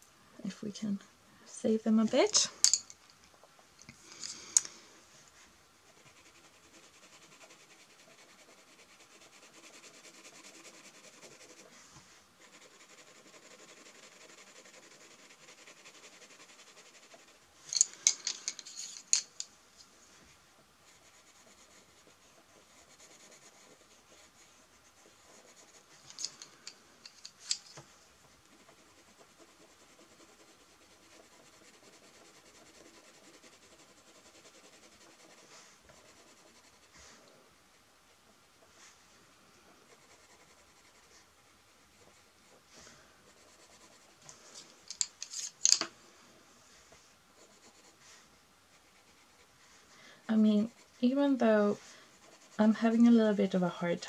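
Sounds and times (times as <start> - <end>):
pencil scratching on paper: 5.8 - 17.4, 20.8 - 26.6, 28.4 - 37.4, 39.7 - 45.6, 46.9 - 53.4.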